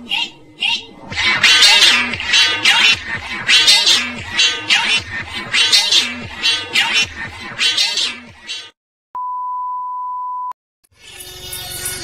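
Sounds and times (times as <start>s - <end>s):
steady high test tone beep: 9.2s - 10.6s.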